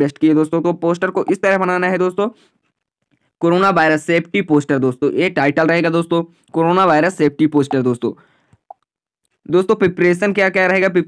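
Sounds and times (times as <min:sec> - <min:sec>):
man narrating: 0:00.0 - 0:02.4, 0:03.4 - 0:08.2, 0:09.5 - 0:11.0.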